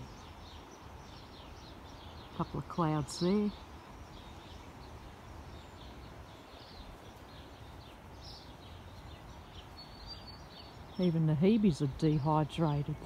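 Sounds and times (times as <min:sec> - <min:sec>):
faint bird chirps: 0:00.0 - 0:11.9.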